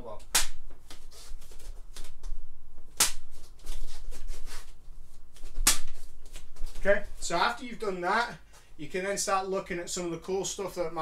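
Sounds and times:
fist punching paper pops: 0.3s - 0.6s, 3.0s - 3.2s, 5.6s - 6.0s.

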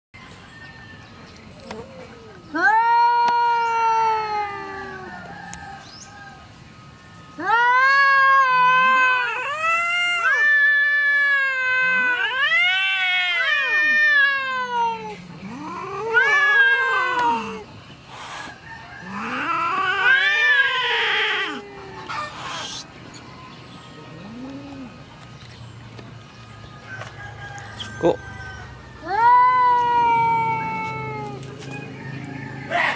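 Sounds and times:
cat yowling: 7.4s - 17.6s, 19.2s - 22.9s, 29.0s - 31.4s.

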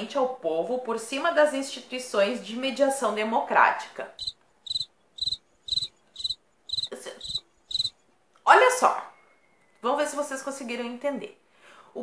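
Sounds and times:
cricket chirping: 4.2s - 8.0s.

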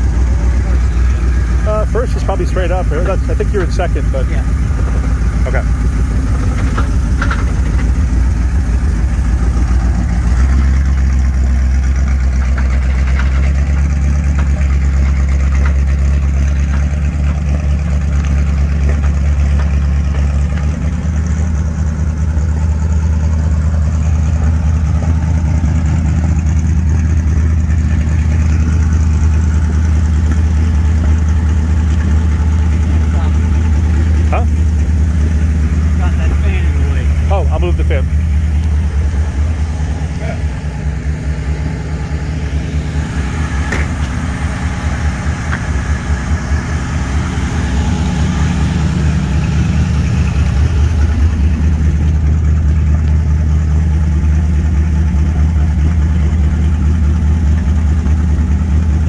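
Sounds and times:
car engine running low: 0.0s - 59.0s.

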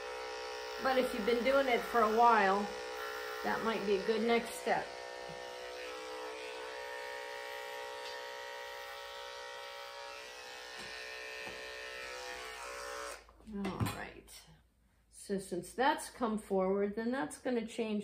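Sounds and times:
electric clippers running: 0.0s - 13.3s.

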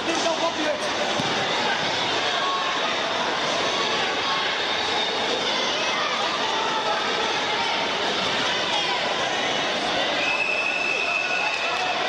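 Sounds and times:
babble of many voices: 0.0s - 12.0s.

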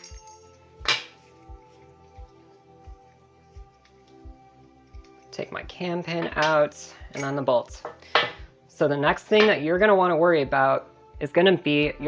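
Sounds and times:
background music with beat: 0.0s - 6.7s.

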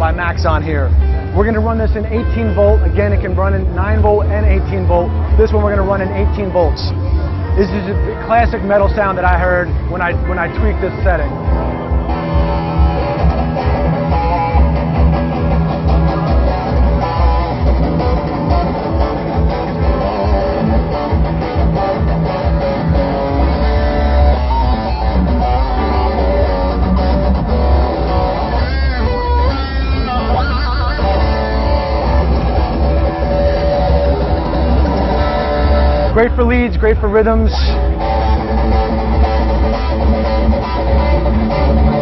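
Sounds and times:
distorted electric guitar: 0.0s - 42.0s.

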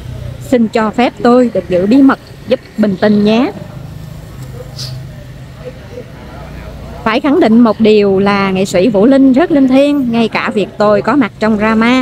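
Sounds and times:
motor scooters passing: 0.0s - 12.0s.

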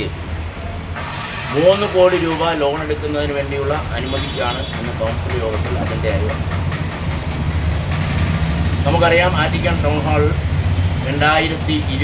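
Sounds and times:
man speaking: 1.5s - 6.4s, 8.9s - 10.4s, 11.0s - 12.0s.

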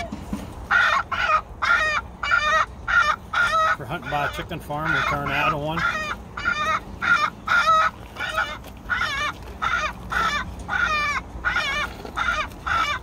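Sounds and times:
recorded chicken squawks: 0.7s - 13.0s.

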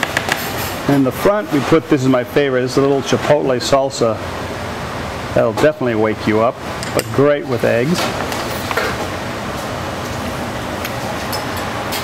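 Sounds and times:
ventilation rushing hiss: 0.0s - 12.0s.

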